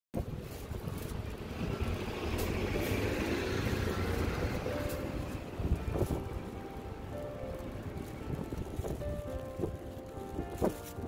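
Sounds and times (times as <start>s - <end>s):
plastic bags rustling: 0.2s - 11.0s
road traffic rumble: 0.2s - 11.0s.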